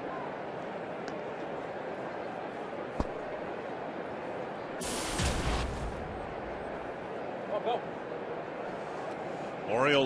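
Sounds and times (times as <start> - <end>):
murmur of crowd: 0.0 - 10.0.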